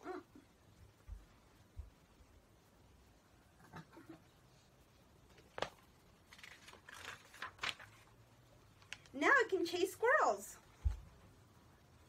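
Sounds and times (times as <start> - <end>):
paper pages rustling: 5.3 - 9.2.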